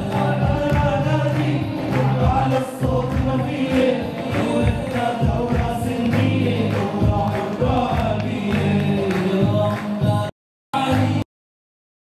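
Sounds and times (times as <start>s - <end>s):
steady beat: 0.0s - 10.3s
men singing together: 0.0s - 11.2s.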